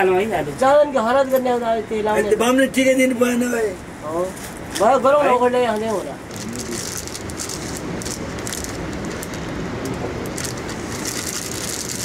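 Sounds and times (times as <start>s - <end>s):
plastic packet crinkling: 6.3s - 9.5s, 10.2s - 12.0s.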